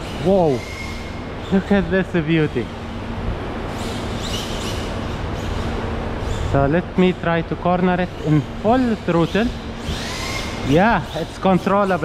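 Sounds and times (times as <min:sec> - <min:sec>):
steady background noise: 0:00.0 - 0:12.0
electric motor high-pitched whine: 0:02.5 - 0:12.0.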